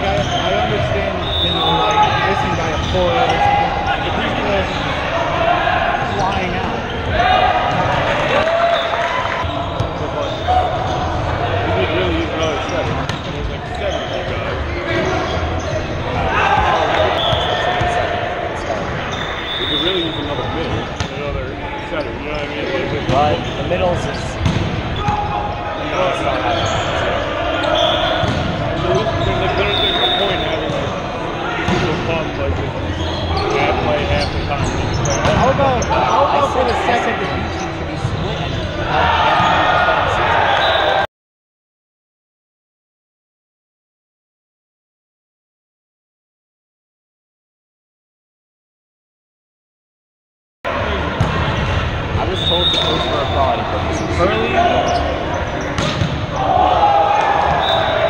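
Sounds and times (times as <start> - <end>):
players calling and shouting: 0.0 - 41.1, 50.7 - 58.0
volleyball hits and thuds: 24.4 - 24.9, 55.8 - 56.2.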